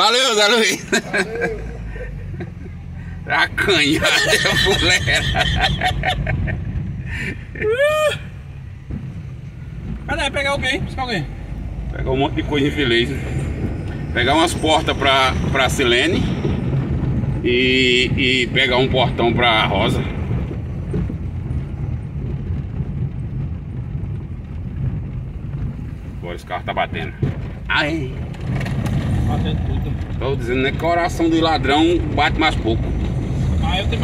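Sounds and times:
car rumbling over cobblestones: 0:00.0 - 0:34.0
truck body rattling and knocking: 0:02.2 - 0:34.0.

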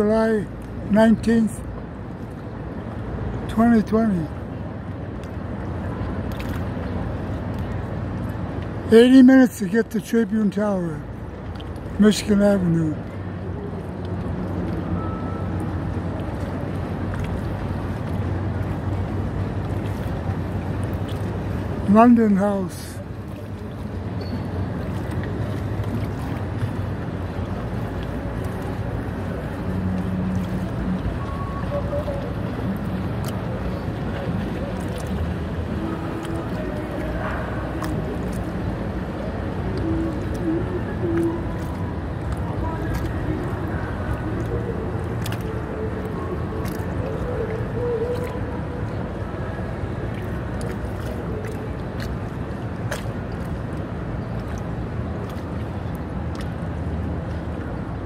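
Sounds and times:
motorboats passing: 0:00.0 - 0:58.0
river water rumble: 0:00.0 - 0:58.0.

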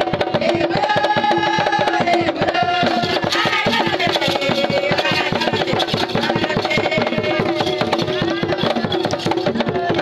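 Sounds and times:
fast drum beat: 0:00.0 - 0:10.0.

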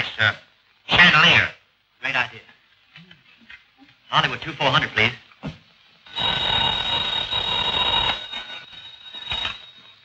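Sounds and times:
telephone bell ringing: 0:06.1 - 0:10.0.

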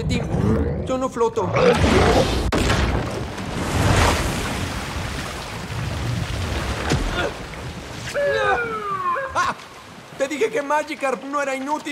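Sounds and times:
floodwater rushing and splashing: 0:03.0 - 0:11.9.

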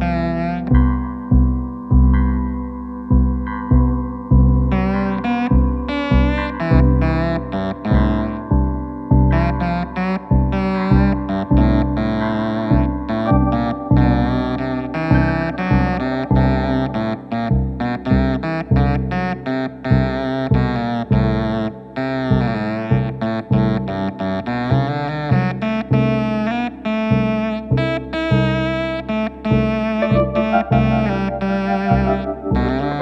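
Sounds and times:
electric piano sustained tones: 0:00.0 - 0:18.6, 0:30.0 - 0:33.0
electric guitar with effects: 0:00.0 - 0:25.0, 0:28.3 - 0:33.0.

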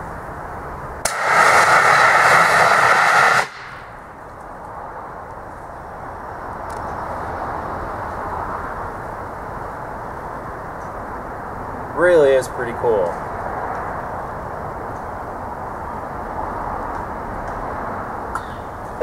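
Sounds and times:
outdoor background noise: 0:00.0 - 0:19.0
loud hissing gas jet: 0:01.0 - 0:03.9.

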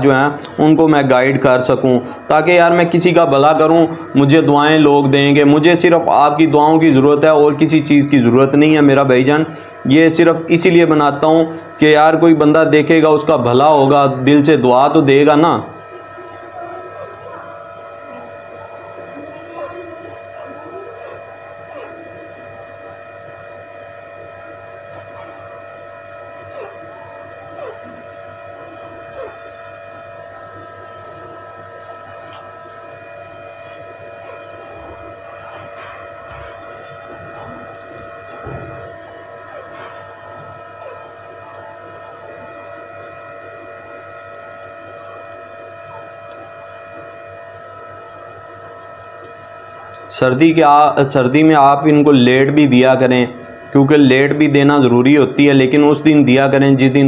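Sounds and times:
electrical motor humming: 0:00.0 - 0:57.0.

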